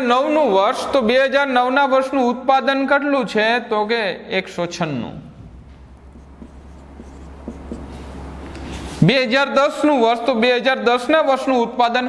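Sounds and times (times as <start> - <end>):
low hum: 5.3 - 9.0
marker writing on whiteboard: 5.8 - 8.9.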